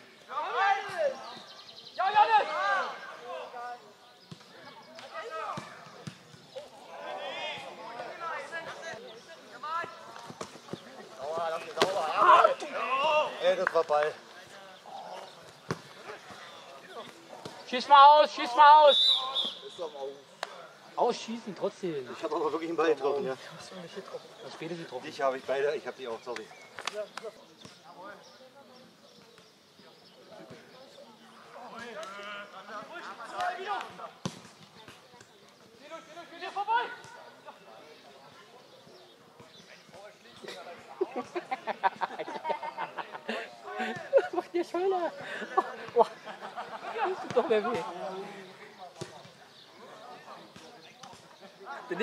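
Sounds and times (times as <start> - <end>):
distant players shouting: 0.3 - 3.6.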